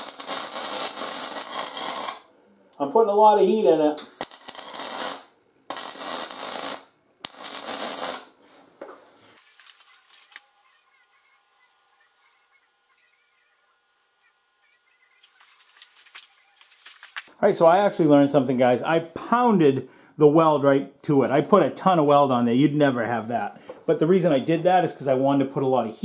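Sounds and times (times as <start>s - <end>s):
welding arc crackling: 0.0s - 2.3s, 4.0s - 8.4s.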